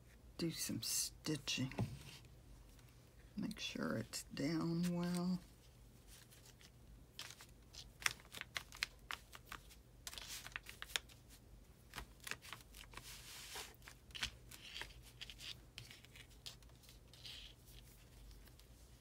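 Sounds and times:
fabric and paper rustling: 4.5 - 19.0.

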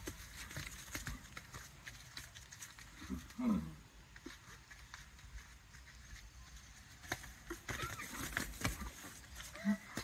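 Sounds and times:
horse hoof steps on wet sand: 0.0 - 10.0
rustling: 0.0 - 10.0.

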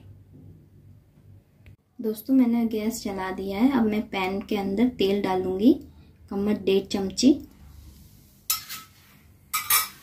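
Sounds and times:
kitchenware clinking: 8.5 - 10.0.

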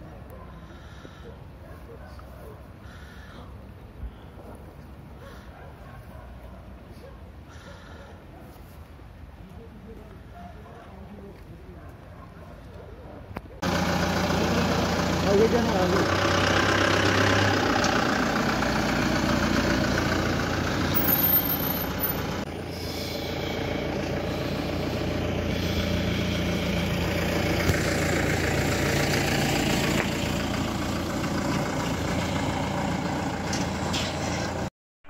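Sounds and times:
jeep engine idling: 13.6 - 33.5.

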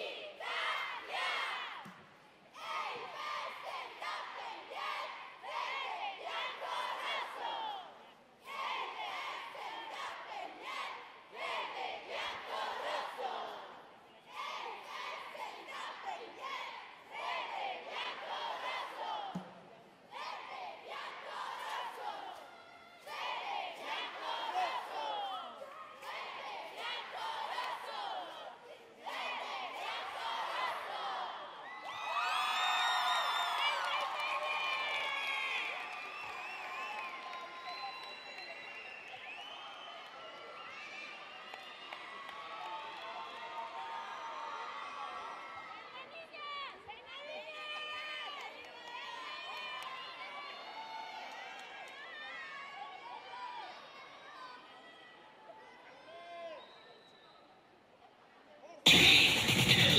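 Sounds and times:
girls shouting a chant: 0.0 - 1.8, 2.5 - 19.3, 20.1 - 32.2
crowd cheering: 29.8 - 45.6, 58.9 - 59.9.

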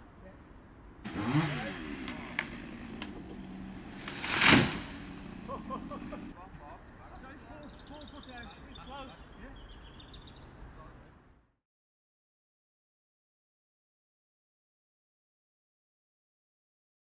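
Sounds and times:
chainsaw running: 1.0 - 6.4
tree crashing down through branches: 1.1 - 6.2
voices: 1.1 - 9.8.

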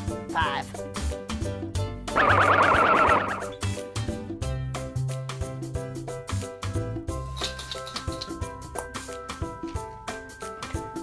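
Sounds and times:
upbeat children's music: 0.0 - 11.0
warbling cartoon sound effect: 2.2 - 3.6.

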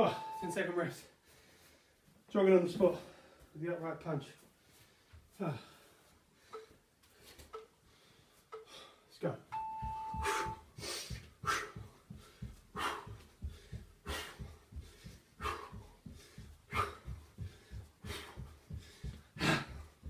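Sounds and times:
short electronic beep: 0.0 - 0.7, 9.6 - 10.6
man breathing hard: 1.2 - 2.1, 4.6 - 9.1, 10.2 - 20.0
soft footfalls on floor mat: 9.7 - 20.0.

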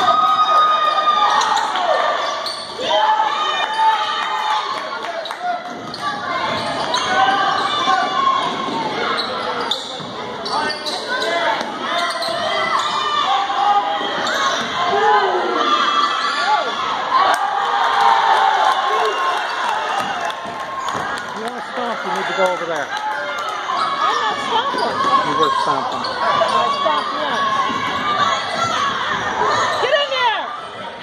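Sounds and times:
players and spectators shouting: 0.0 - 31.0.

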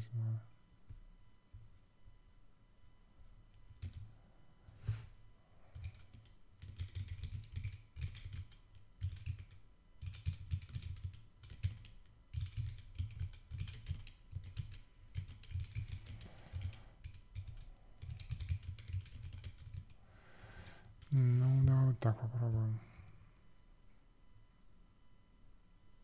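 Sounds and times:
typing on computer keyboard: 3.7 - 4.1, 5.7 - 20.0.

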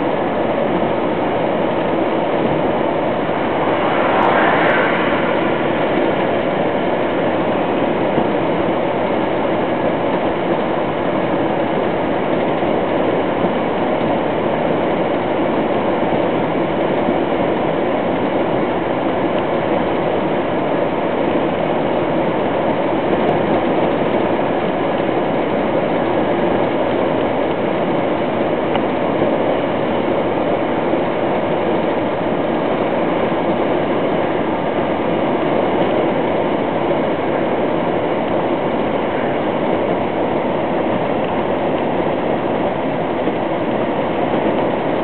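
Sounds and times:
engine and road noise in cab: 5.9 - 45.0.

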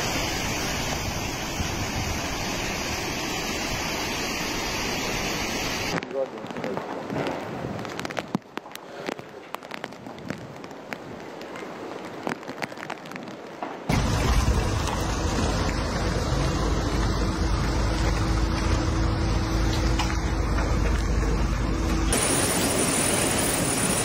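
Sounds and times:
rain pattering: 5.9 - 24.0
low rumbling noise: 13.9 - 24.0.

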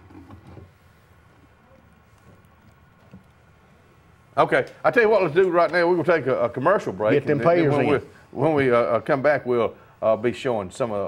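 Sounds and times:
faint low murmur: 0.4 - 11.0.

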